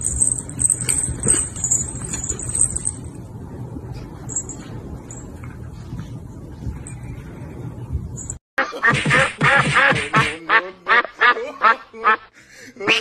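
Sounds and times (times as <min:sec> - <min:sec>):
duck quacking: 0:08.6 - 0:13.0.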